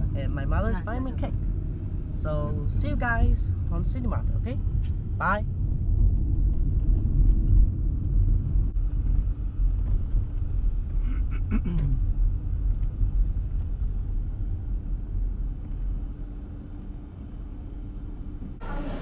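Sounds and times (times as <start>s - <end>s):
car engine and road rumble: 0.0s - 19.0s
person coughing: 11.0s - 12.0s.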